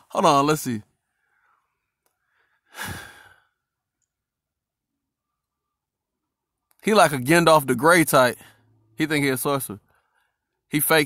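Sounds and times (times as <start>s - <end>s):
man sighing: 2.6s - 3.6s.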